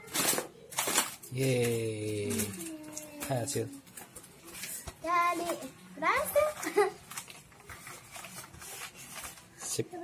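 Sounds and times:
faint handling noises: 0:00.0 - 0:10.0.

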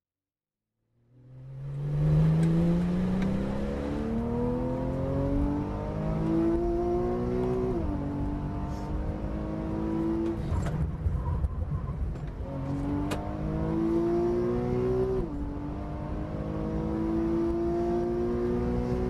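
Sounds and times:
car engine under full throttle: 0:01.0 - 0:19.0.

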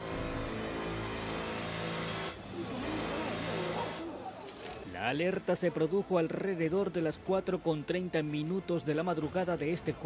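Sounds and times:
engine-like drone: 0:00.0 - 0:04.1.

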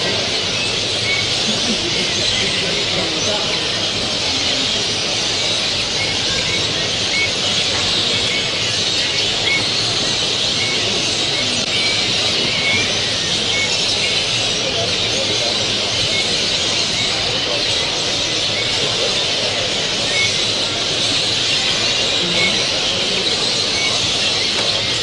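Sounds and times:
finches and canaries chirping: 0:00.0 - 0:25.0
murmur of voices: 0:00.0 - 0:25.0.

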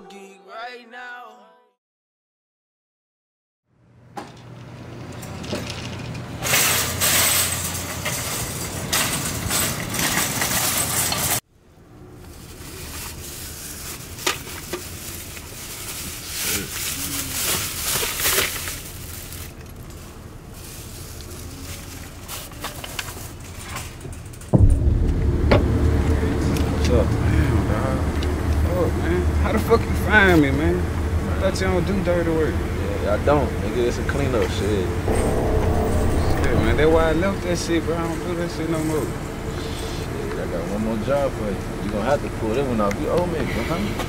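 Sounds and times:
wire shopping cart rattling: 0:05.4 - 0:11.4.

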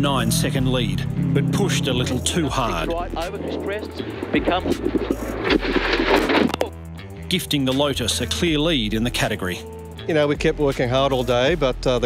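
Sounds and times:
car engine running hard: 0:00.0 - 0:06.6
background music: 0:00.0 - 0:12.0.

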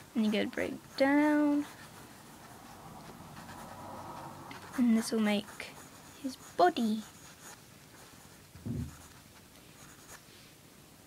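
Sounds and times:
pencil scratching on paper: 0:00.2 - 0:10.2.

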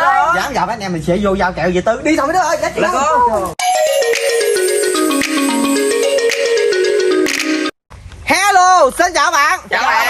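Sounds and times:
descending intro jingle: 0:03.6 - 0:07.8.

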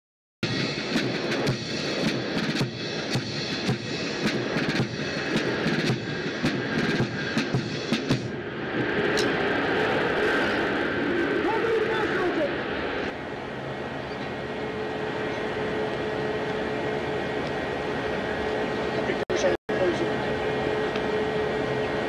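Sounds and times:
military band music: 0:00.4 - 0:09.4
aircraft engine noise: 0:00.4 - 0:22.0.

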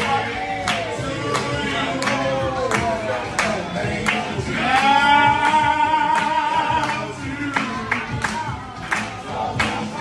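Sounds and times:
group singing: 0:00.0 - 0:10.0
people clapping in time: 0:00.0 - 0:10.0.

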